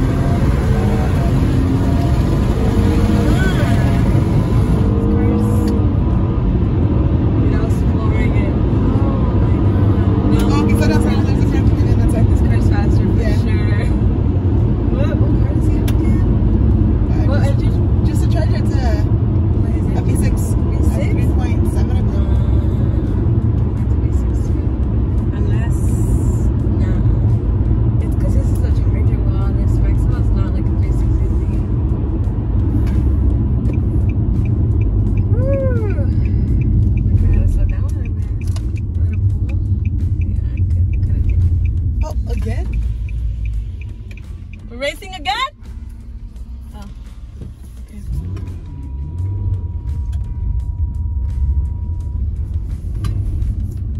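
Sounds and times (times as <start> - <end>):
car engine rumble: 0.0 - 53.9
road noise inside car: 0.0 - 53.9.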